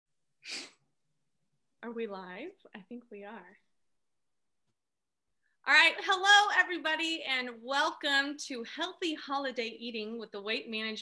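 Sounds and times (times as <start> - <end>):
person's sharp burst of breath: 0.4 - 0.8
woman speaking: 1.8 - 3.7.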